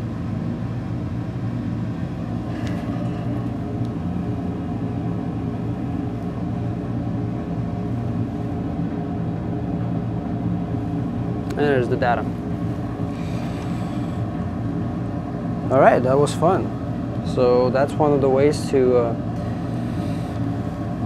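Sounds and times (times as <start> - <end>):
steady mechanical hum: 0.0 - 21.0.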